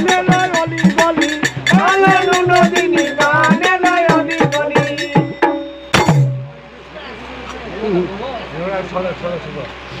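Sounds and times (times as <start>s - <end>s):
barrel hand drum stroke: 0.0s - 6.6s.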